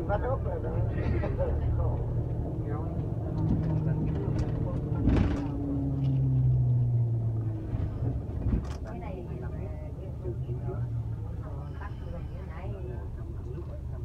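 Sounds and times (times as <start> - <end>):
bus engine and road noise: 0.0 - 14.0.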